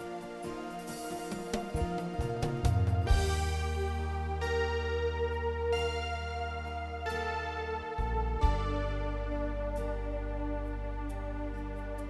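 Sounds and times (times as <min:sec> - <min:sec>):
keyboard notes and chord: 0:00.0 - 0:12.0
deep bass note: 0:02.5 - 0:12.0.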